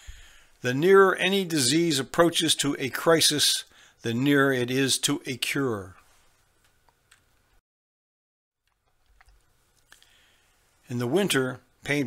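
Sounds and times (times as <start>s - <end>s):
man narrating: 0.6s - 6.0s, 10.9s - 12.0s.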